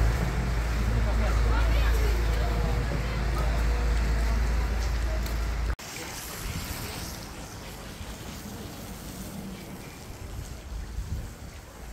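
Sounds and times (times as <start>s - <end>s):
floodwater rushing in channel: 0.0s - 11.9s
wind buffeting microphone: 0.0s - 11.9s.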